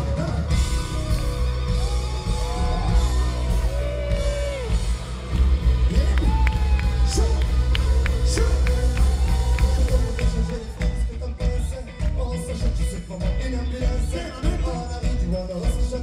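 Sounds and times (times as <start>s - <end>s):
rock band playing loud: 0.0s - 16.0s.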